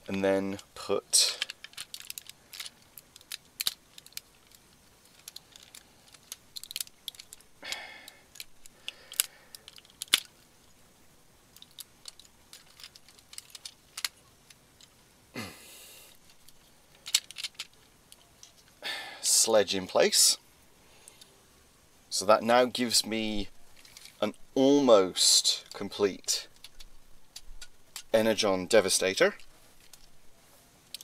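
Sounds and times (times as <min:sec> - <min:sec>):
soft handling rustles: 0:00.0 - 0:07.6, 0:11.5 - 0:15.0, 0:16.1 - 0:18.8, 0:22.2 - 0:25.0, 0:25.6 - 0:31.0
plastic toy parts clicking: 0:01.4 - 0:10.5, 0:11.5 - 0:15.0, 0:16.1 - 0:18.8, 0:23.8 - 0:24.4, 0:25.6 - 0:28.3, 0:29.3 - 0:30.2.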